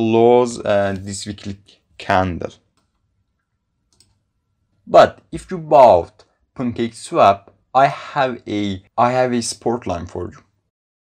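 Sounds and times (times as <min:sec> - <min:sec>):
faint computer mouse click: 0:02.7 - 0:04.2.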